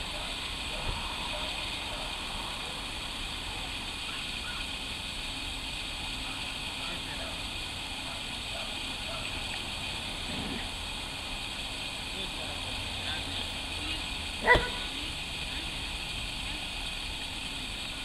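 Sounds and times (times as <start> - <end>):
outdoor background noise: 0.0 - 18.0
dog barking: 1.3 - 2.1, 8.1 - 9.3, 14.4 - 14.9.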